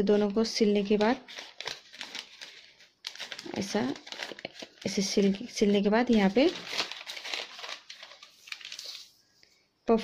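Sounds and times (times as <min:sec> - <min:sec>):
paper rustling and crinkling: 0:00.2 - 0:09.2.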